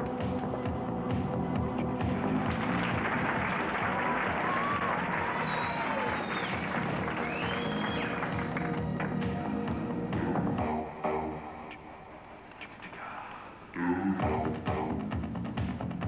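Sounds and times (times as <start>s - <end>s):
background music with steady beat: 0.0s - 12.8s, 13.5s - 16.0s
sliding whistle-like notes: 5.4s - 8.3s.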